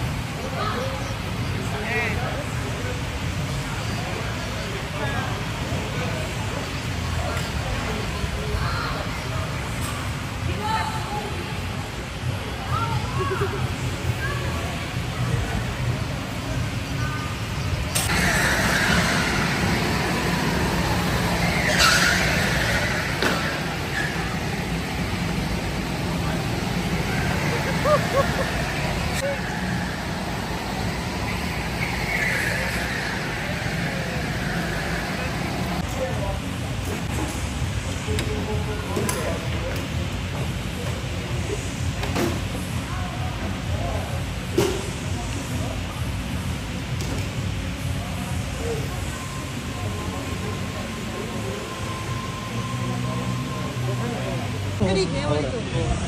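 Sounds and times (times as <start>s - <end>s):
go-karts running: 18.0s - 37.4s
tyres squealing: 18.1s - 35.8s.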